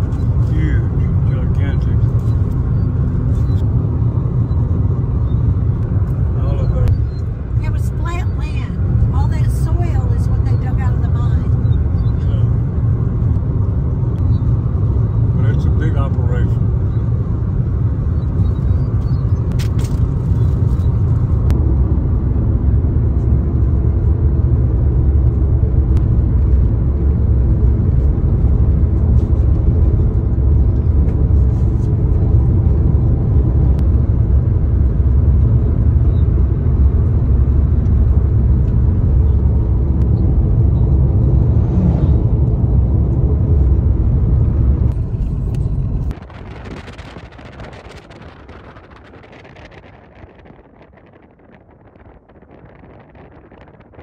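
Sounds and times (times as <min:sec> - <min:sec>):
road and engine rumble: 0:00.0 - 0:54.0.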